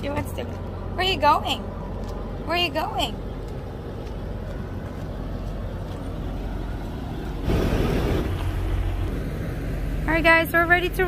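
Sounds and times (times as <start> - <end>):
truck diesel engine idling: 0.0 - 11.0.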